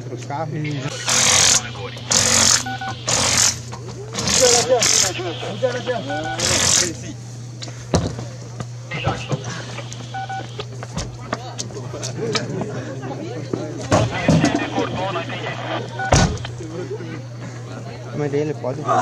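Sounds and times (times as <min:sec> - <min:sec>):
steady low hum: 0:00.6 - 0:18.2
short two-tone beeps: 0:00.9 - 0:03.6, 0:04.2 - 0:06.6, 0:08.9 - 0:10.6, 0:15.8 - 0:16.5.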